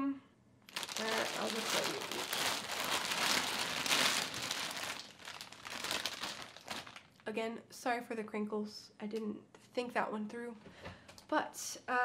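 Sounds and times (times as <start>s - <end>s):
plastic bag crinkling: 0.7s - 7.3s.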